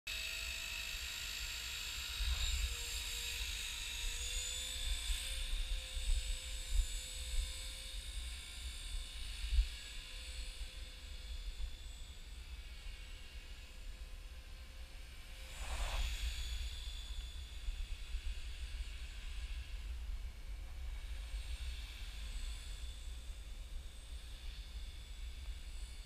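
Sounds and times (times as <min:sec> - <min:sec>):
rc helicopter whine: 0:00.1 - 0:26.0.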